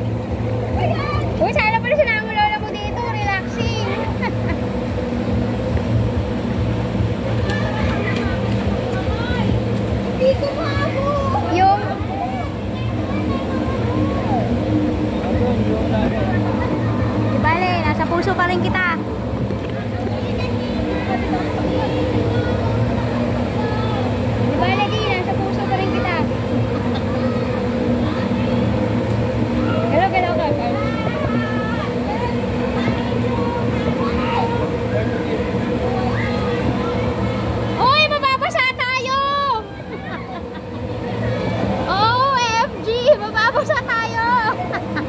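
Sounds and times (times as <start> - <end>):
low mechanical hum: 0.0 - 45.0
people's voices: 0.0 - 45.0.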